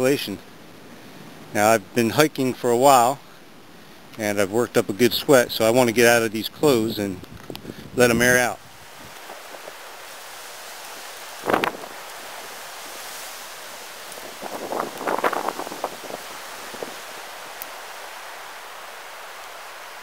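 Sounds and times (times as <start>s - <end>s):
wind blowing across microphone: 4.8s - 18.2s.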